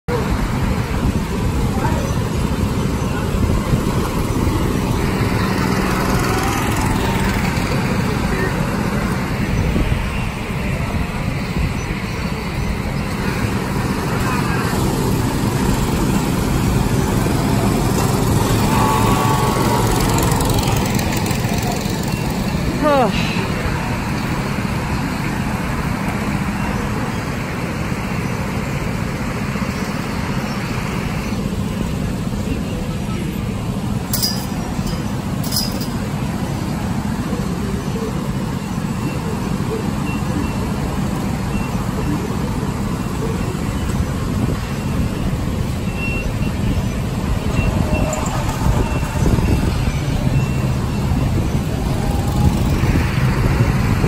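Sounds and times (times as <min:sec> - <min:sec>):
go-kart engines revving: 0:00.1 - 0:54.0.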